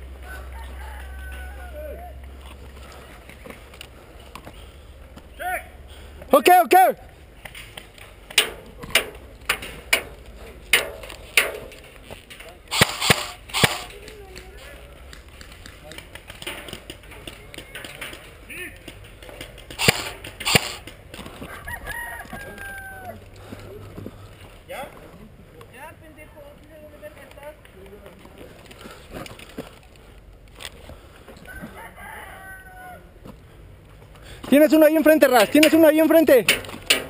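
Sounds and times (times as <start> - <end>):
distant shouting: 0.2 - 3.1, 5.3 - 7.2
airsoft gun shots: 12.7 - 14.0, 19.8 - 20.9.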